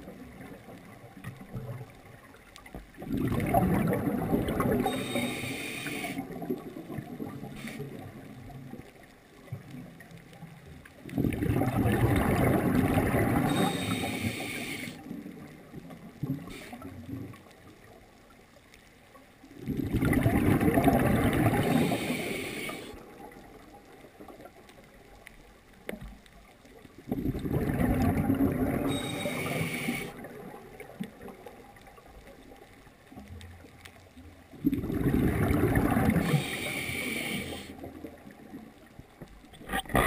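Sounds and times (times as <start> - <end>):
exhaled bubbles underwater: 0.0 - 18.4, 19.4 - 40.0.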